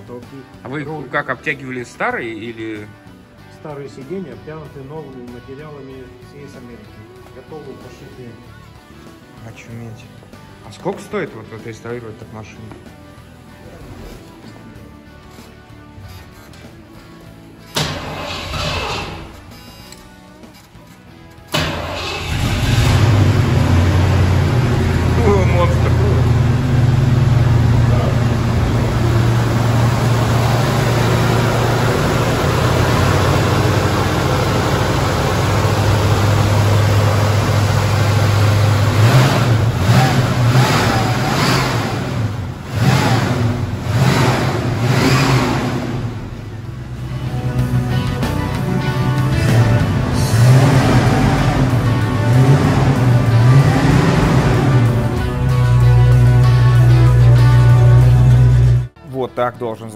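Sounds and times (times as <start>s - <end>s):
car engine starting: 15.2s - 59.0s
car engine idling: 17.7s - 19.5s, 21.5s - 59.0s
car engine revving: 17.7s - 19.6s, 21.5s - 59.0s.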